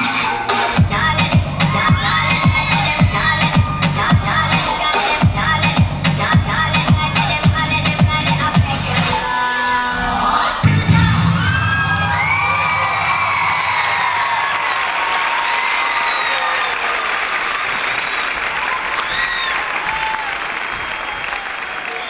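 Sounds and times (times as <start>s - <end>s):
music bass: 0.0s - 9.2s, 10.6s - 14.7s
high-pitched cheers: 1.6s - 5.0s, 10.9s - 22.0s
audience clapping: 13.4s - 22.0s.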